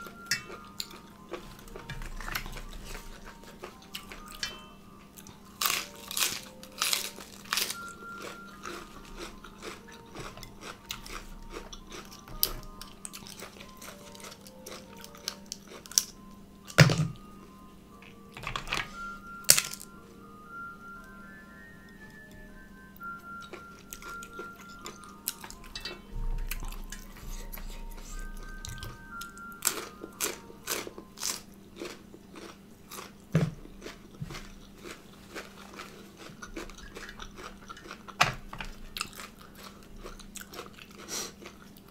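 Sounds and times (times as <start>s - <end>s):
crunchy chewing of leafy vegetables: 0.0s - 4.4s, 5.1s - 16.2s, 23.3s - 41.9s
faint background music: 0.0s - 41.9s.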